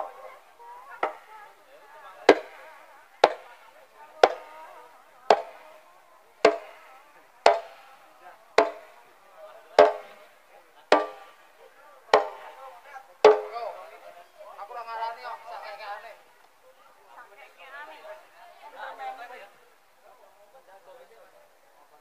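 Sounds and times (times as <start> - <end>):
voices: 0.0 - 22.0.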